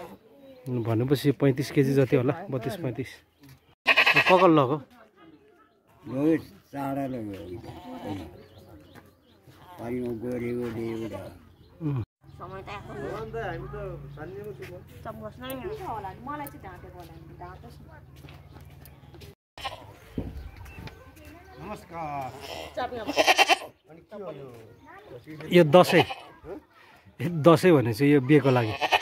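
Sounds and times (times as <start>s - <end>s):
goat bleating: 3.8s - 4.6s, 7.6s - 8.4s, 19.6s - 20.0s, 22.2s - 23.7s, 25.7s - 26.4s, 28.4s - 29.0s.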